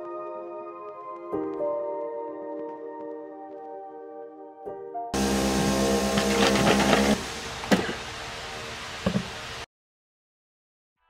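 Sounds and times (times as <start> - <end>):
coffee machine whirring: 5.2 - 8.1, 9.0 - 9.4.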